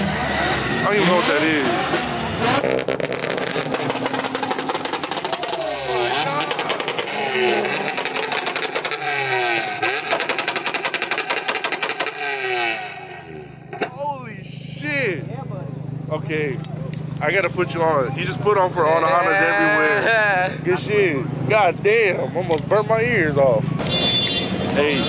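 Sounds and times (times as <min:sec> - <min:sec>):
car engine idling: 0:00.0 - 0:24.6
car engine revving: 0:00.0 - 0:25.0
rattling exhaust pulse: 0:02.7 - 0:12.2.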